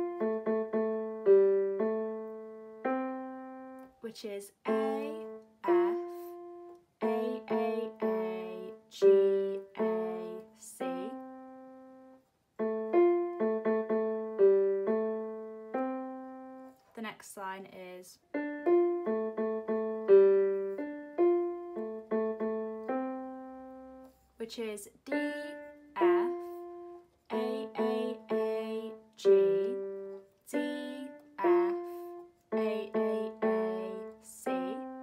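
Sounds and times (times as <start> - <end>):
electronic keyboard piano melody: 0.0 - 4.0, 4.6 - 16.8, 18.3 - 24.3, 25.1 - 35.0.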